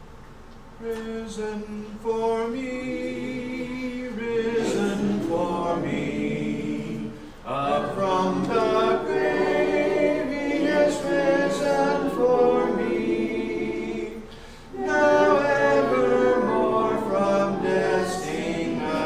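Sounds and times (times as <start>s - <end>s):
congregation singing a hymn: 0.8s - 19.0s.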